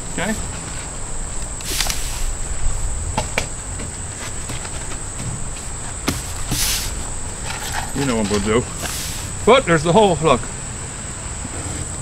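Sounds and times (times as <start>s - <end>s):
insects buzzing: 0.0s - 12.0s
rustling noise: 0.2s - 9.4s.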